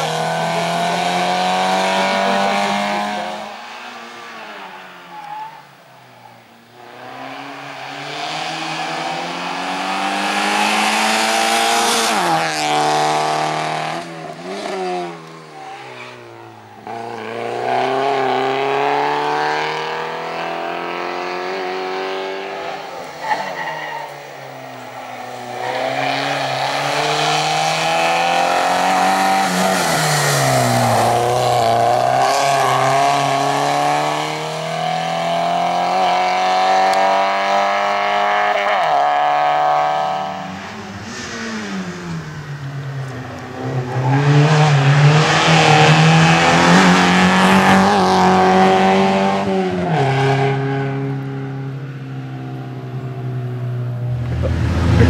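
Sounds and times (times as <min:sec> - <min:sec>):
car engine revving hard: 0:00.0 - 0:03.7, 0:07.0 - 0:15.8, 0:16.8 - 0:23.0, 0:24.3 - 0:42.2, 0:43.8 - 0:51.7.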